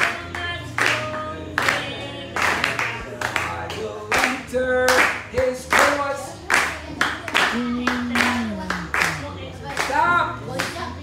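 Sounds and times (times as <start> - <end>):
person singing praise song: 0.0 - 6.4, 7.4 - 10.4
congregation clapping to a beat: 0.0 - 10.9.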